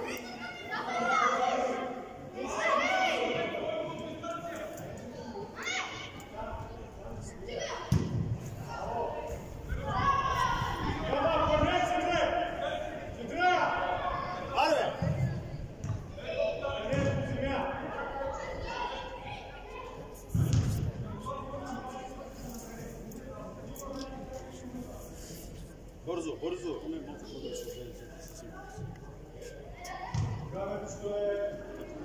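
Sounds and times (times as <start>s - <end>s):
voices shouting in a hall: 0.0s - 24.8s, 25.8s - 32.0s
ball being kicked: 20.4s - 20.9s.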